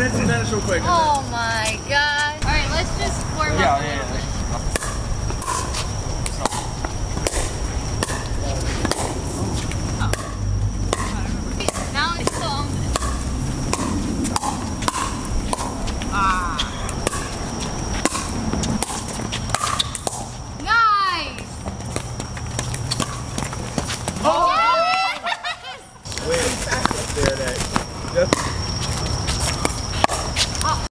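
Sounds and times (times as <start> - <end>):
ball bouncing on hard court: 4.7 - 20.4, 21.3 - 24.3, 26.7 - 30.5.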